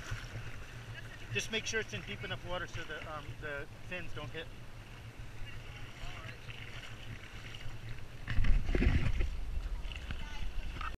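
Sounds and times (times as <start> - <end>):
water lapping: 0.0 - 10.9
water splashing: 0.0 - 10.9
wind buffeting camera: 8.2 - 10.9.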